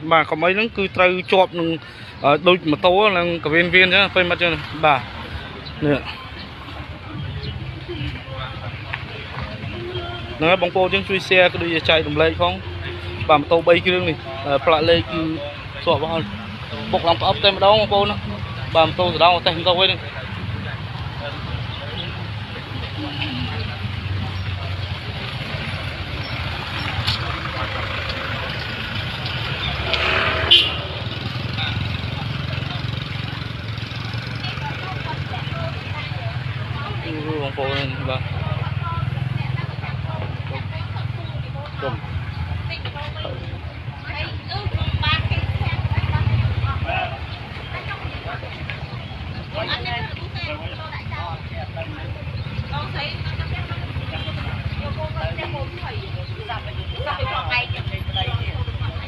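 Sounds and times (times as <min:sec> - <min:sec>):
bystanders talking: 0:00.0 - 0:59.0
passing traffic engine hum: 0:00.0 - 0:59.0.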